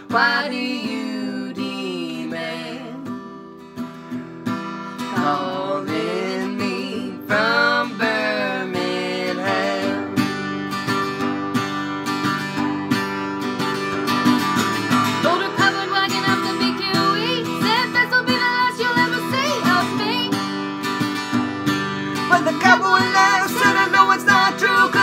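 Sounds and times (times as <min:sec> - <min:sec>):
acoustic guitar strumming: 0:00.0 - 0:25.0.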